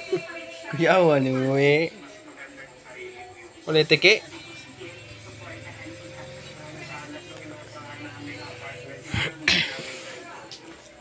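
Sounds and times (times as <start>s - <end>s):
person sneezing: 9.1s - 10.0s.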